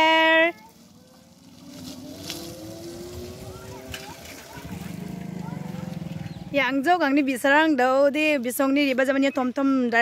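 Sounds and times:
road noise: 0:00.0 - 0:10.0.

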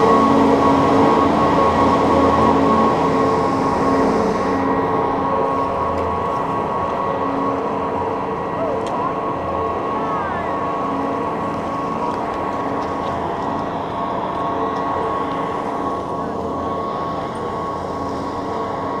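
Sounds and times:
machinery hum and whine: 0:00.0 - 0:19.0.

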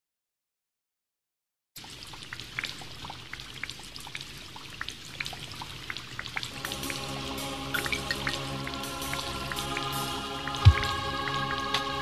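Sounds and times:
water drips: 0:01.8 - 0:12.0
soft hiss: 0:06.3 - 0:12.0
low hum: 0:06.5 - 0:12.0
sustained keyboard chords: 0:06.5 - 0:12.0.

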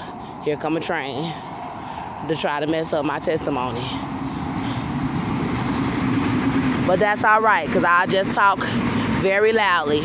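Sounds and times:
low drone: 0:00.0 - 0:10.0
train rumbling by: 0:00.0 - 0:10.0.

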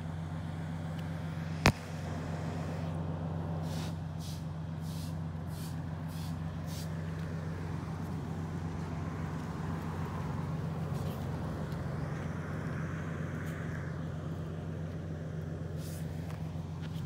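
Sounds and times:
traffic hum: 0:00.0 - 0:17.0
passing vehicle hiss: 0:00.6 - 0:17.0.

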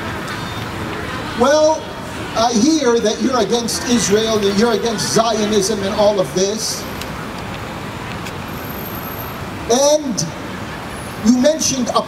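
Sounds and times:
road traffic: 0:00.0 - 0:12.0.

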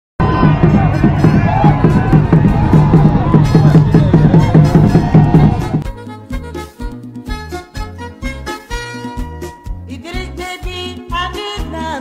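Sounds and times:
music with pulsing beat: 0:00.2 - 0:09.9
person singing: 0:09.8 - 0:12.0.

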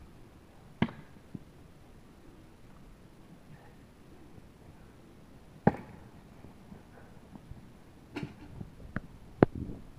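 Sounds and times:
tomahawk striking wooden target: 0:05.6 - 0:06.0.

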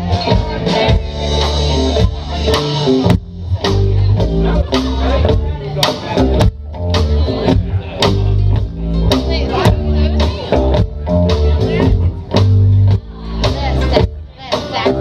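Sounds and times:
drums: 0:00.0 - 0:15.0
electric bass: 0:00.0 - 0:15.0
electric guitar: 0:00.0 - 0:15.0.

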